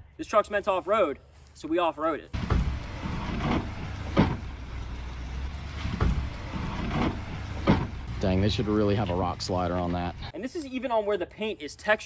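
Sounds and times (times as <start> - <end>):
truck knocking against rock: 2.4 - 5.1, 5.8 - 10.2
truck engine running at low revs: 2.4 - 10.3.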